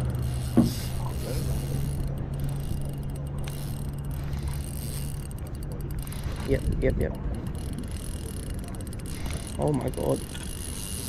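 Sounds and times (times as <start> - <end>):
spinning reel whirring: 0.0 - 11.0.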